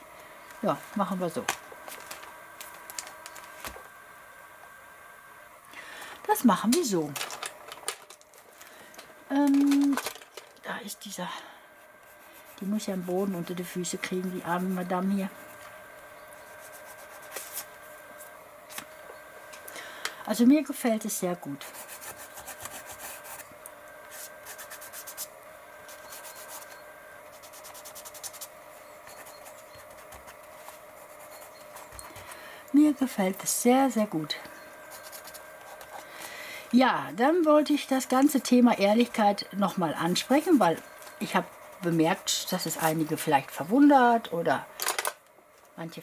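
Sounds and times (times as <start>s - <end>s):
paper rubbing under hand: 16.4s - 17.8s, 24.1s - 32.2s.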